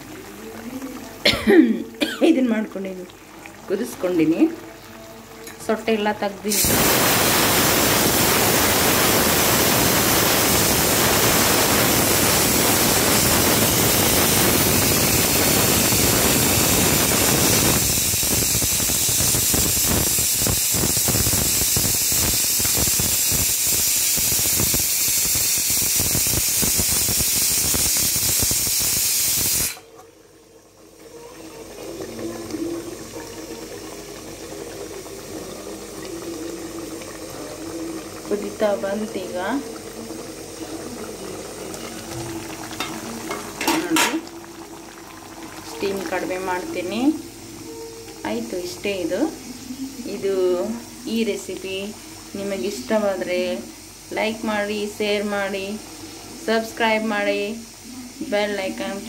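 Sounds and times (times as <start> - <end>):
gravy sizzling in a pan: 0.0 - 59.0.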